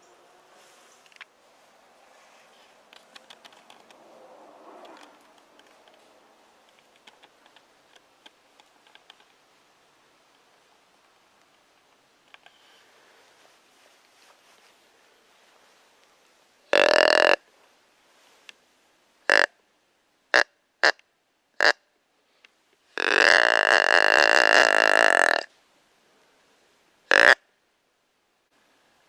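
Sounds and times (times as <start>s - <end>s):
deer grunt call: 23.0s - 25.5s.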